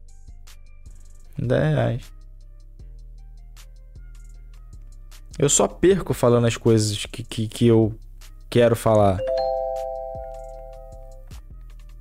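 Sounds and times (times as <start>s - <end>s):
bell-like alert chime: 9.2s - 11.1s.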